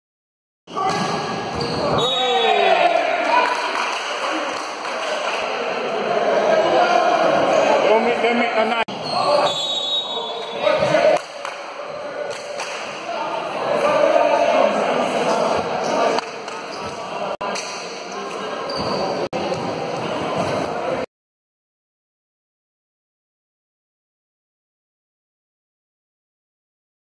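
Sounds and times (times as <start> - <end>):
people shouting in a hall: 0.7 - 8.0
players and spectators voices: 0.7 - 21.1.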